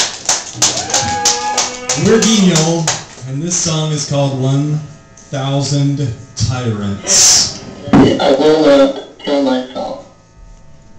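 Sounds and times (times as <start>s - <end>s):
rhythmic ticking: 0.0s - 4.0s.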